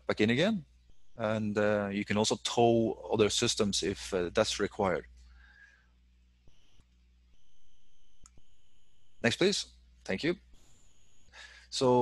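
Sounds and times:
high-pitched electronic tone: 0.9s - 1.7s, 6.5s - 6.8s, 7.4s - 9.4s, 10.6s - 11.4s.

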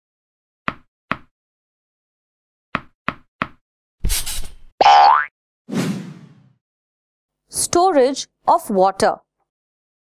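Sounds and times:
brief swish: 4.0s - 4.6s, 5.7s - 6.5s.

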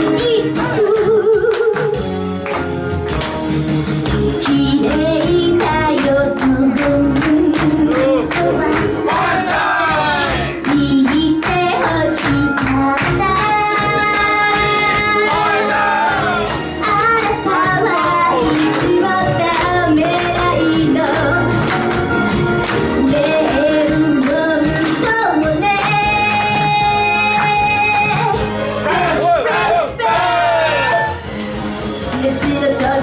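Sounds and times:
woman singing pop into microphone: 0.0s - 2.0s, 4.4s - 9.2s, 10.7s - 15.4s, 16.8s - 21.6s, 23.0s - 28.2s, 32.2s - 33.0s
backing music: 0.0s - 33.0s.

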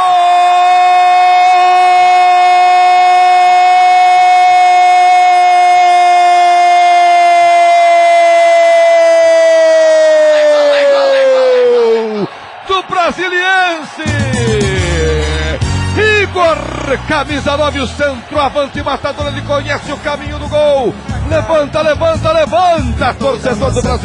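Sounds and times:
announcer's long goal cry: 0.0s - 17.5s.

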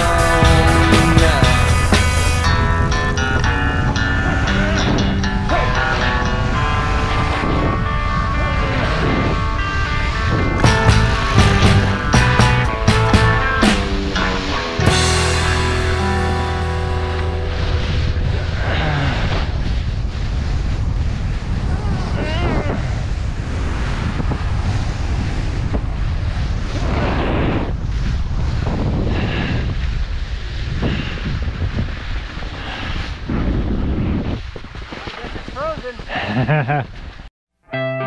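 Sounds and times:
wind buffeting microphone: 0.0s - 37.3s
person's voice: 0.9s - 1.8s
skis scraping over snow: 16.9s - 37.3s.

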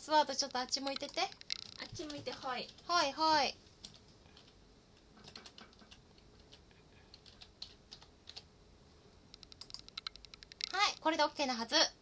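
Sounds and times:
computer keyboard typing: 0.5s - 3.0s, 3.8s - 4.6s, 5.2s - 8.5s, 9.3s - 11.2s.

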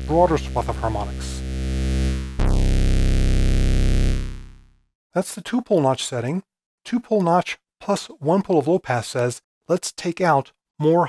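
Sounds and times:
low synthesizer note: 0.0s - 4.7s.

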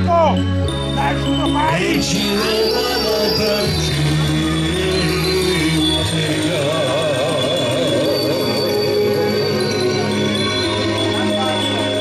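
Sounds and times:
steady bass: 0.0s - 12.0s
wavering melody line: 0.0s - 12.0s.

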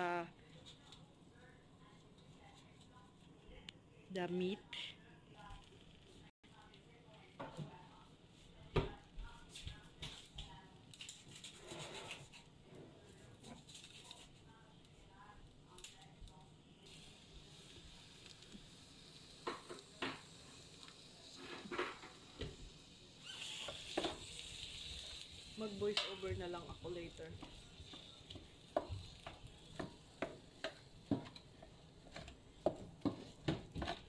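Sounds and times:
meat sizzling in a pot: 16.7s - 34.0s.

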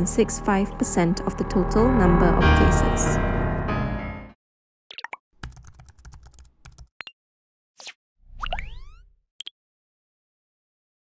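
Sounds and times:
keyboard typing clicks: 5.0s - 7.0s.

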